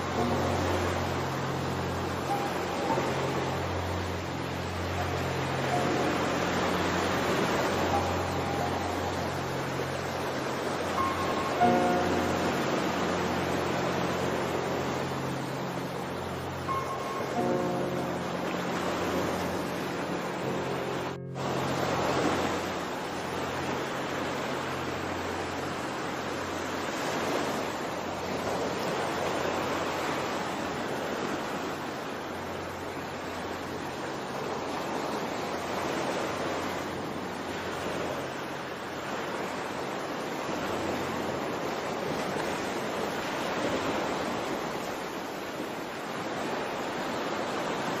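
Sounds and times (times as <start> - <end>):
ocean waves washing: 0.0 - 48.0.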